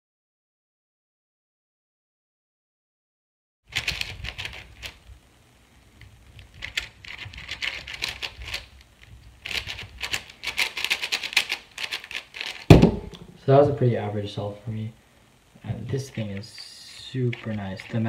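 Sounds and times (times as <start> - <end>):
puzzle cube plastic clicking: 6.0 - 13.3
loud thump: 12.7 - 13.4.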